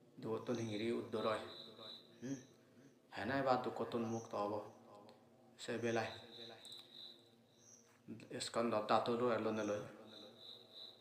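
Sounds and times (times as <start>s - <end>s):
faint high steady tone: 0.1s - 8.3s, 9.1s - 11.0s
man talking: 0.2s - 2.5s, 3.1s - 4.8s, 5.6s - 6.6s, 8.1s - 10.3s.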